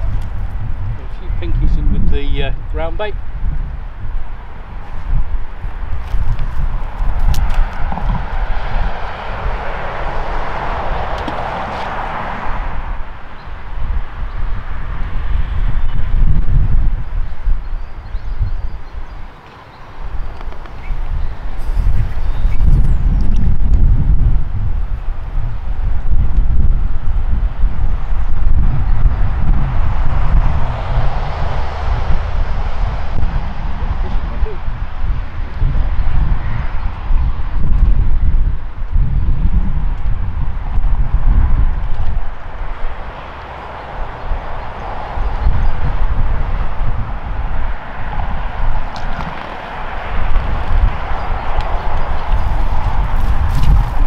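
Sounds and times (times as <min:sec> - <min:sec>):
road traffic passing: 0:00.0 - 0:54.0
wind buffeting microphone: 0:00.0 - 0:54.0.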